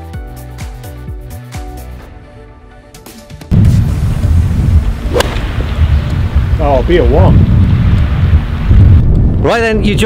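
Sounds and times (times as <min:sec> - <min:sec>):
background music: 0:00.0 - 0:03.8
wind buffeting microphone: 0:03.5 - 0:10.0
golf club striking ball: 0:05.1 - 0:05.5.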